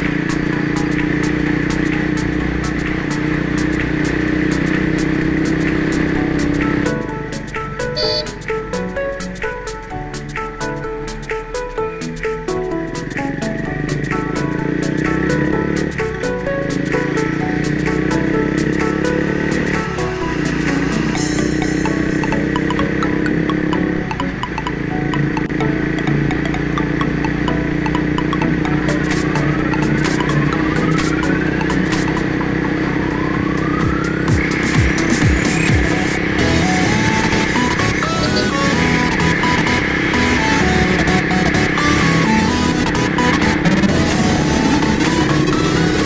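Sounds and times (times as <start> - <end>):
background music with sustained notes: 0.0 - 46.0
rising sweeps: 0.0 - 46.0.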